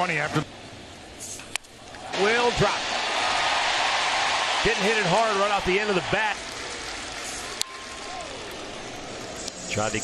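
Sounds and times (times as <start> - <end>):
ballpark crowd noise: 1.7 - 10.0.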